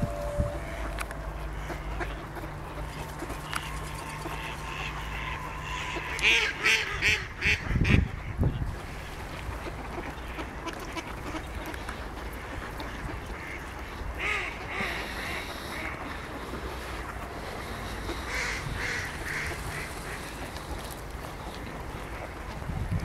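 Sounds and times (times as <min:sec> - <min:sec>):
ducks quacking: 0:00.0 - 0:22.6
low steady rumble: 0:00.0 - 0:23.0.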